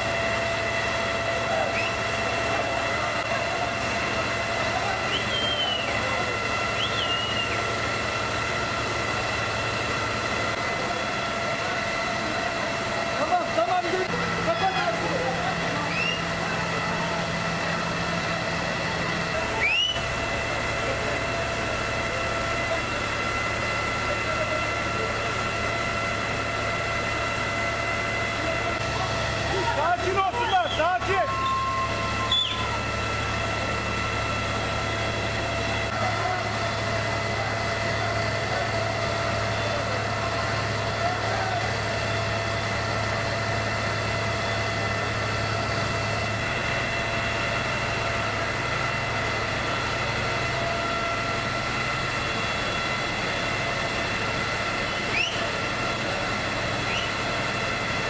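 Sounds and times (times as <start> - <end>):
fire truck engine running: 0.0 - 58.0
high steady whine: 0.0 - 58.0.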